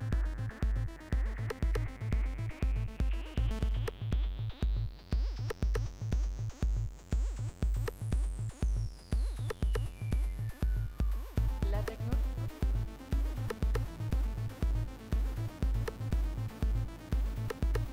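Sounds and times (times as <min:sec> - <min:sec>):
drum machine kick beat: 0:00.0 - 0:17.9.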